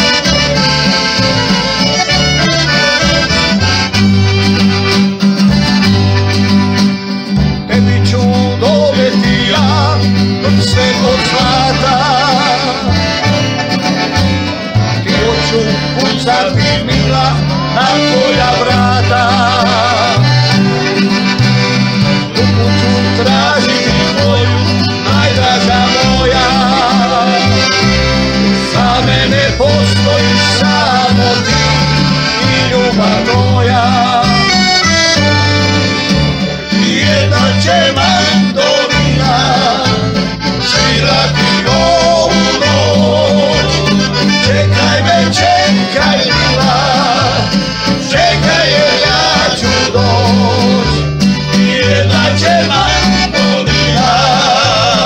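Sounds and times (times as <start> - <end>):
men singing: 0.0 - 4.6, 7.5 - 55.0
double bass: 0.0 - 55.0
piano accordion: 0.0 - 55.0
strummed acoustic guitar: 0.0 - 55.0.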